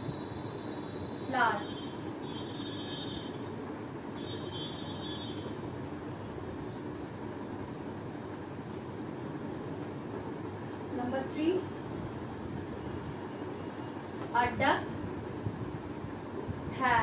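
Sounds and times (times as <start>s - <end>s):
low rumbling background noise: 0.0s - 17.0s.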